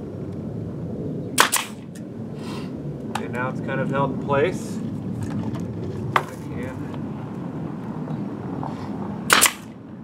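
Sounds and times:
nail gun shot: 1.4s - 1.9s, 9.3s - 9.7s.

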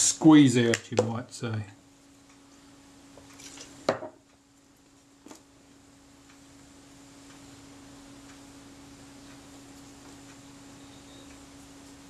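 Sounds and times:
steady low hum: 0.0s - 12.0s.

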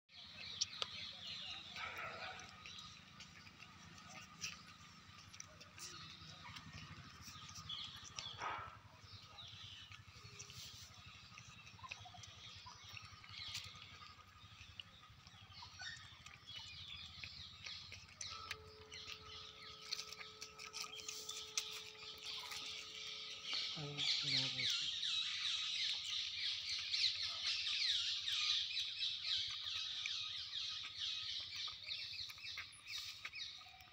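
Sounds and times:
small birds chirping: 0.1s - 33.9s.

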